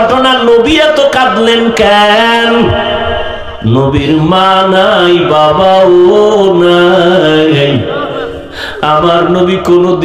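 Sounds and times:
man chanting in sung intonation: 0:00.0 - 0:10.0.

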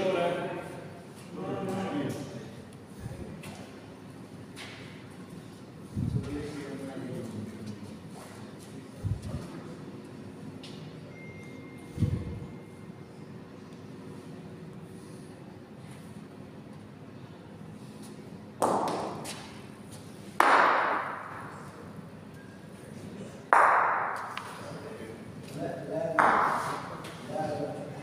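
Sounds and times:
steady low hum: 0:00.0 - 0:28.0
bocce balls clacking: 0:23.5 - 0:24.5.

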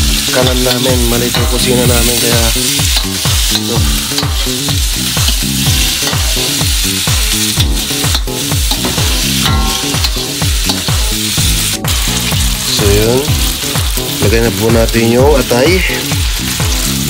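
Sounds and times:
food sizzling in oil: 0:00.0 - 0:17.0
metal spatula scraping wok: 0:00.2 - 0:12.7.

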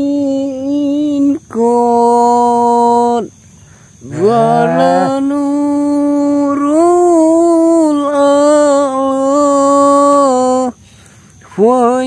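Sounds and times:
voice holding a long note: 0:04.0 - 0:07.7.

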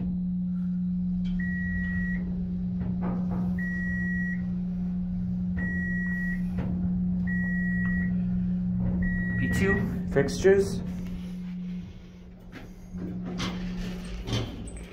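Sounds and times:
low hum: 0:00.0 - 0:14.9
elevator high beeps: 0:00.5 - 0:02.7, 0:03.6 - 0:14.9.

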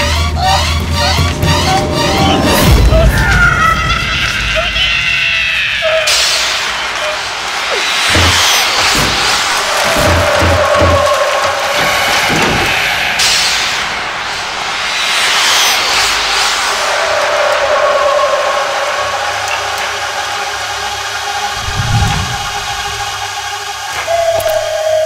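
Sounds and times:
sustained droning tone: 0:21.2 - 0:23.7
wind-like whoosh: 0:21.4 - 0:23.3.

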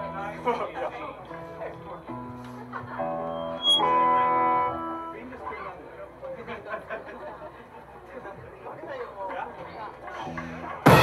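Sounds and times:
electric guitar chords: 0:02.8 - 0:05.3.

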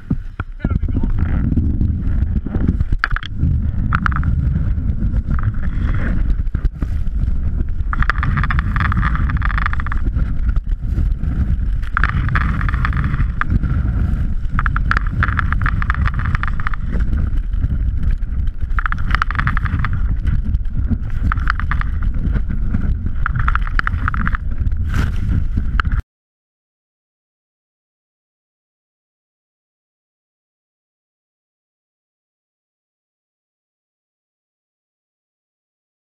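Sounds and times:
board edge scraping snow: 0:00.0 - 0:26.0
snowboard rumbling over snow: 0:00.0 - 0:26.0
wind on microphone: 0:00.0 - 0:26.0.

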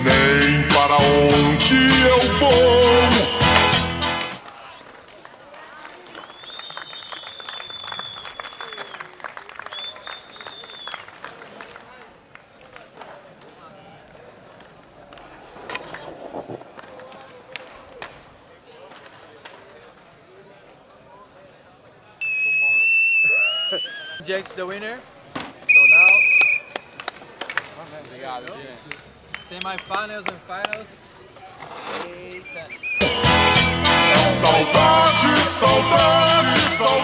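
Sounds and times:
people talking outdoors: 0:02.1 - 0:37.0.

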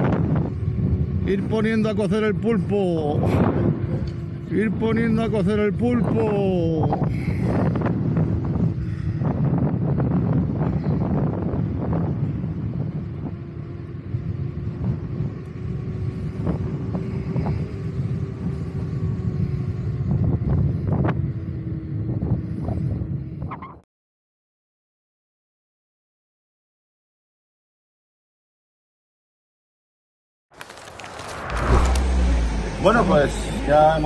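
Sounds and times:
wind: 0:00.0 - 0:23.8, 0:30.5 - 0:34.0
tyre rumble on asphalt: 0:30.6 - 0:32.3.

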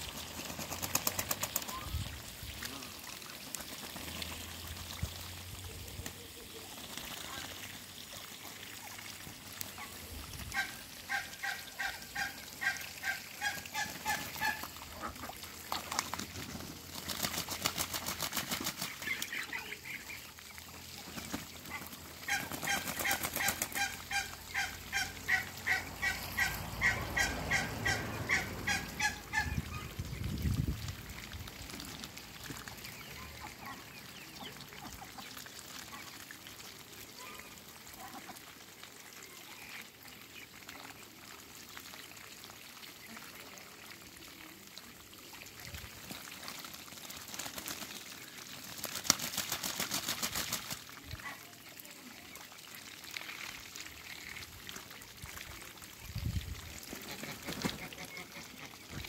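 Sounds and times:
geese honking: 0:22.2 - 0:29.9.

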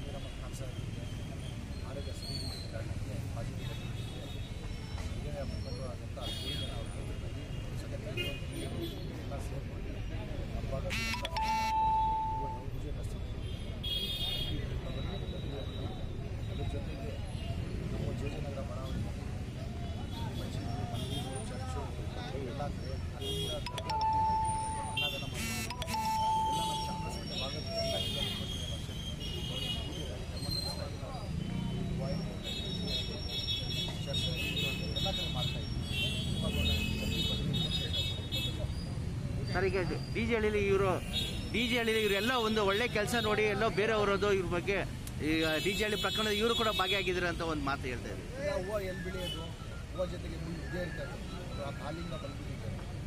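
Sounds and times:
street voices: 0:00.0 - 0:53.0
traffic: 0:00.0 - 0:53.0
horn-like tone: 0:10.9 - 0:12.6, 0:23.6 - 0:27.3
short high beep: 0:10.9 - 0:12.8, 0:23.7 - 0:27.9.

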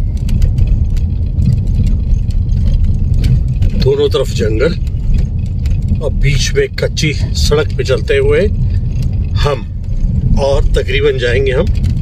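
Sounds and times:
car engine and tyres rumbling: 0:00.0 - 0:12.0
light clicks and rattles: 0:00.0 - 0:12.0.

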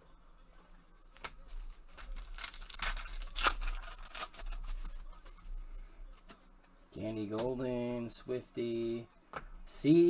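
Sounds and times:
foil wrapper tearing and crinkling: 0:01.8 - 0:05.0.

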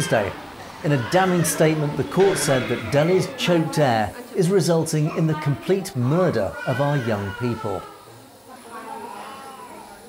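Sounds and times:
hospital room background noise: 0:00.0 - 0:10.0
young child crying faintly: 0:06.3 - 0:10.0.

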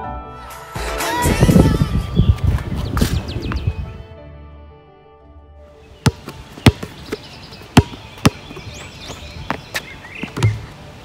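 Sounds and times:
basketball bouncing on hard court: 0:06.0 - 0:08.7, 0:09.5 - 0:10.6.

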